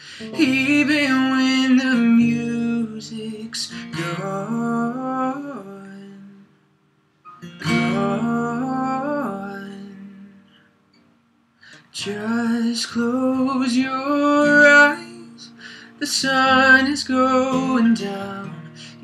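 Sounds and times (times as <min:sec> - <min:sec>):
acoustic guitar strummed: 0:00.0 - 0:19.0.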